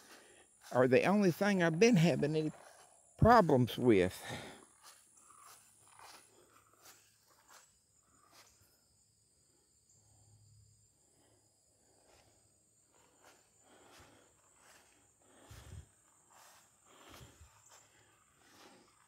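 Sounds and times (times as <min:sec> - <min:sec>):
footsteps in grass: 0:00.0 - 0:08.6, 0:12.9 - 0:19.0
high insect calls: 0:00.0 - 0:19.0.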